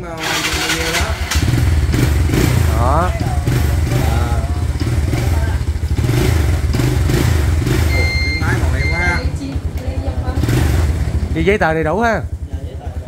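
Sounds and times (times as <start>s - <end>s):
small motorcycle engine idling: 0.0s - 13.0s
short high-pitched beeps: 7.7s - 9.4s.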